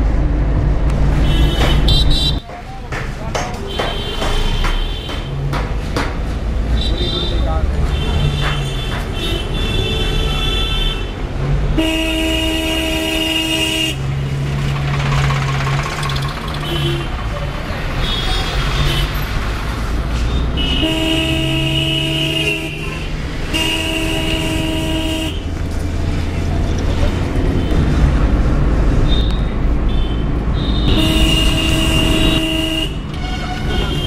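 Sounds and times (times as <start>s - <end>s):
moving vehicle rumble and road noise: 0.0s - 34.0s
vehicle horn blasts: 11.8s - 14.0s, 20.6s - 25.4s, 29.1s - 34.0s.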